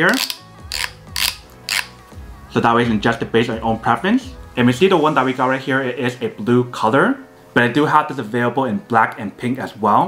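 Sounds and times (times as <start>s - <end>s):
headphone slider clicking: 0.0s - 2.0s.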